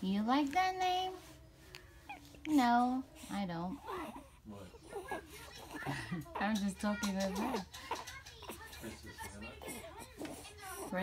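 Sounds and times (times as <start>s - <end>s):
faint background voices: 1.1s - 11.0s
nearby adult voice speaking: 8.6s - 10.1s.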